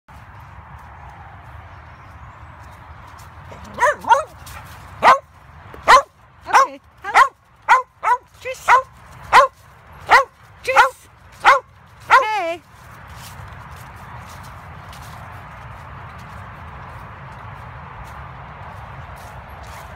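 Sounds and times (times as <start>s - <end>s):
dog barking: 3.5s - 4.4s, 5.0s - 12.3s
soft rustle of leaves: 8.2s - 19.9s.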